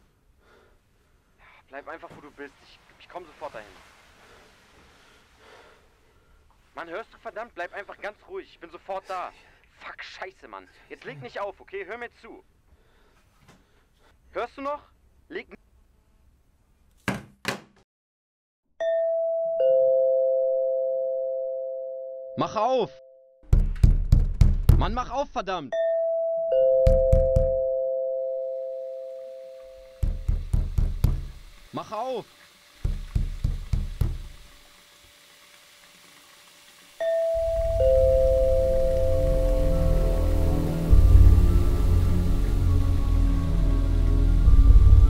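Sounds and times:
quick bangs on a door: 0:17.0 - 0:17.8, 0:23.5 - 0:24.9, 0:32.8 - 0:34.3
two-note doorbell chime: 0:18.8 - 0:22.4, 0:25.8 - 0:29.6, 0:37.0 - 0:42.6
dark film score: 0:37.4 - 0:45.0.

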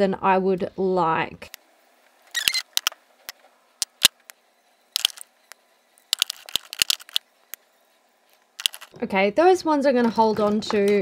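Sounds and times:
plastic tubes clicking and clattering: 0:02.4 - 0:02.9, 0:03.8 - 0:04.3, 0:05.0 - 0:05.3, 0:06.0 - 0:07.2, 0:08.6 - 0:08.9.

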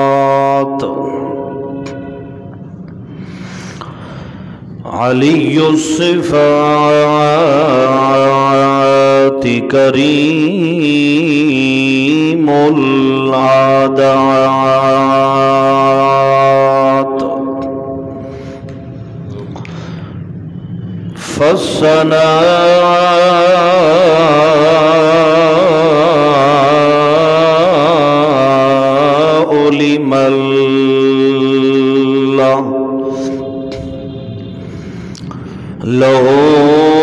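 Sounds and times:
man chanting a long note: 0:00.0 - 0:02.6, 0:04.8 - 0:18.6, 0:21.0 - 0:35.1, 0:35.8 - 0:37.0.

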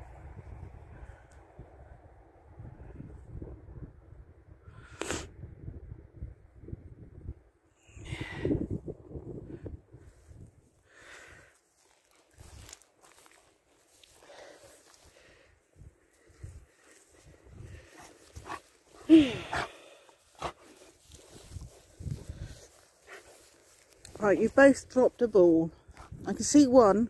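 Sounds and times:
footsteps on grass: 0:10.1 - 0:26.4.

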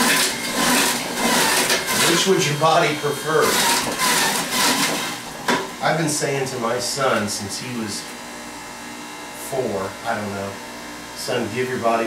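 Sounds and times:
juicer motor whirring: 0:00.0 - 0:05.8.

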